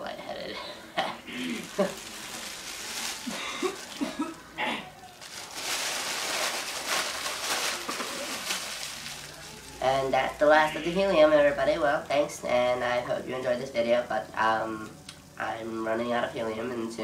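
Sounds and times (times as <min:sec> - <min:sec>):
foil balloon crinkling and hissing: 0:01.4 - 0:10.0.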